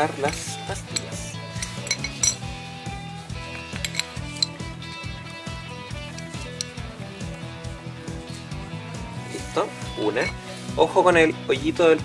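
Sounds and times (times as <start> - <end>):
light metallic clinks: 0.2 - 2.5, 3.6 - 4.6.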